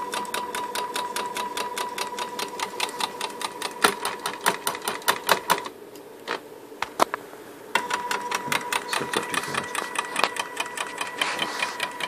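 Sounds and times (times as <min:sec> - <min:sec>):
stepper motor whine and clicking: 0:07.8 - 0:12.0.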